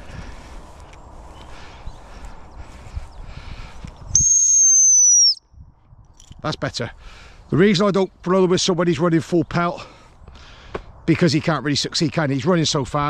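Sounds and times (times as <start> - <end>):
faint outdoor noise: 0.0 - 13.0
shrill dog whistle blast: 4.2 - 5.4.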